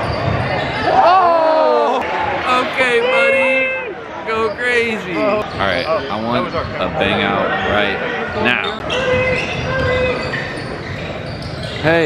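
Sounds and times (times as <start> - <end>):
crowd noise in a gymnasium: 0.0 - 12.0.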